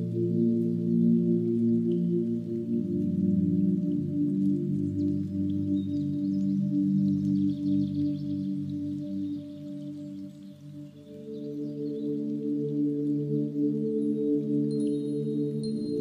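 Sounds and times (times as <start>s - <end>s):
ambient drone music: 0.0s - 16.0s.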